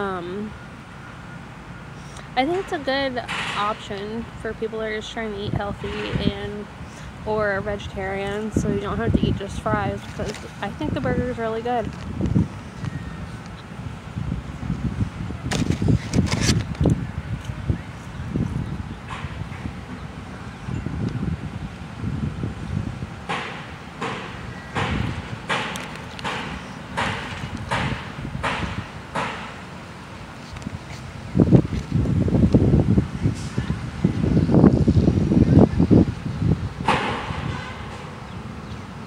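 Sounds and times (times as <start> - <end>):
wind buffeting microphone: 2.2 - 39.0
evenly spaced sharp knocks: 23.3 - 29.6.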